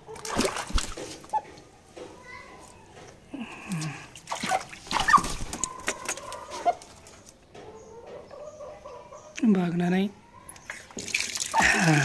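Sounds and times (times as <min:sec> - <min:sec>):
water splashing in a tub: 0:00.1 - 0:01.4, 0:03.8 - 0:05.6, 0:10.7 - 0:12.0.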